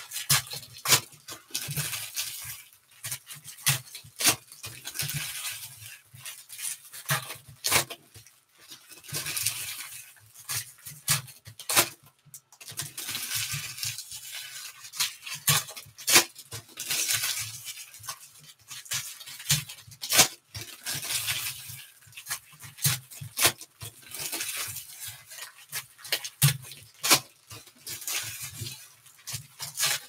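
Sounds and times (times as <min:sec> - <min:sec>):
foil wrapper tearing and crinkling: 0:00.0 - 0:30.0.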